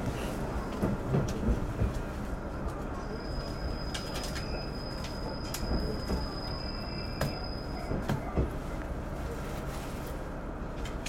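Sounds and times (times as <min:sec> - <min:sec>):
train wheels squealing: 0:03.0 - 0:08.2.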